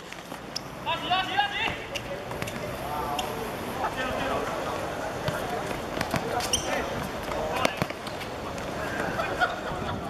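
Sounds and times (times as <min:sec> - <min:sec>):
players calling out: 0:00.5 - 0:09.6
high squeak: 0:06.4 - 0:06.9
football thudding on hard court: 0:07.6 - 0:08.0.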